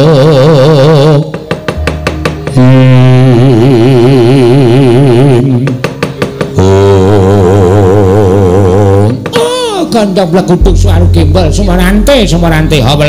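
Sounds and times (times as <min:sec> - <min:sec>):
man singing with wavering vibrato: 0:00.0 - 0:01.3, 0:02.6 - 0:05.7, 0:06.6 - 0:09.2
sharp knocks: 0:01.3 - 0:02.6, 0:05.6 - 0:06.6.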